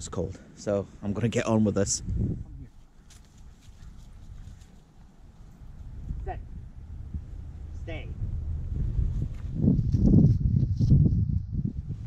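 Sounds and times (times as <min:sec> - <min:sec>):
wind buffeting microphone: 0:01.4 - 0:12.0
light rustling: 0:02.7 - 0:06.2.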